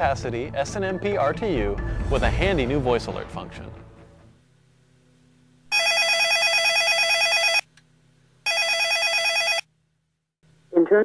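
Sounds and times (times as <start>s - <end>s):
mobile phone warbling ring tone: 5.7s - 7.6s, 8.5s - 9.7s.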